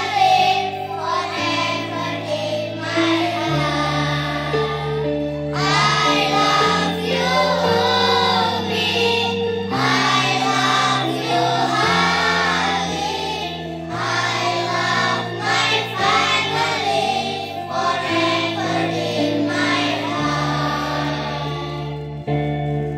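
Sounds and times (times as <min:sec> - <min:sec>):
children singing in unison: 0:00.0 - 0:22.2.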